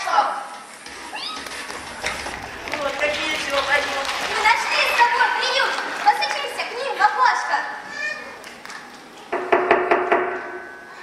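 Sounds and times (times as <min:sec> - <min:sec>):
knocking at a door: 0:09.3 - 0:10.4.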